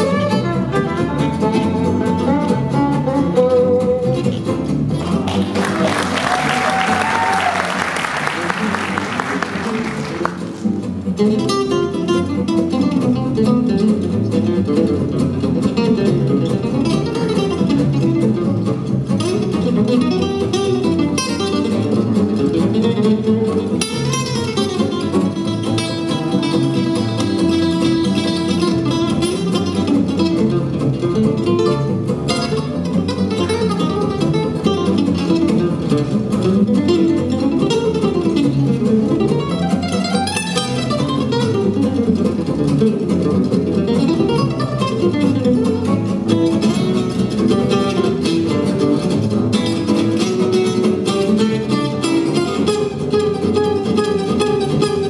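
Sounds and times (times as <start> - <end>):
acoustic guitar solo in fast runs: 0.0 - 55.0
double bass: 0.0 - 55.0
rhythm guitar: 0.0 - 55.0
audience applause: 5.1 - 10.8.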